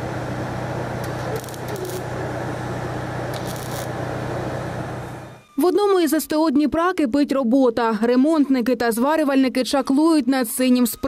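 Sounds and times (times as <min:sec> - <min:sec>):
low electrical hum: 0:00.0 - 0:06.0
welding arc crackling and sizzling: 0:00.5 - 0:05.4
welding spatter bursts: 0:01.0 - 0:02.2, 0:03.3 - 0:04.0.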